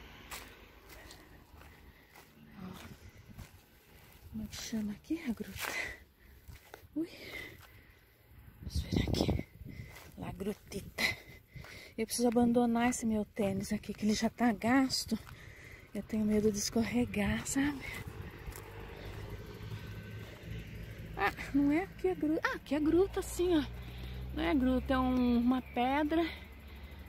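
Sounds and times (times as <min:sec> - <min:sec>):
distant road traffic rumble: 0:00.0 - 0:27.0.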